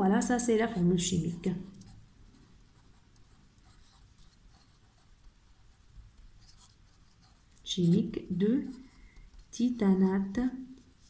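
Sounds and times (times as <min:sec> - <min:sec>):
marker pen scratching on paper: 0:00.6 - 0:10.0.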